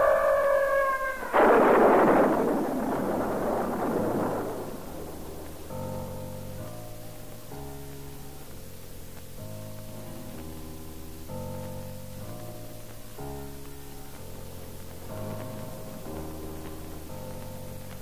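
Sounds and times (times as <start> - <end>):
thunder clap rumbling: 0.0 - 7.9, 12.8 - 18.0
quiet music with held chords: 0.0 - 18.0.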